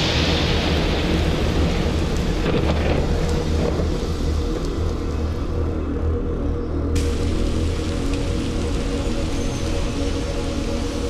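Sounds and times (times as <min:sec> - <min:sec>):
thunder rumbling: 0:00.0 - 0:05.6, 0:07.0 - 0:11.0
steady rain: 0:00.0 - 0:11.0.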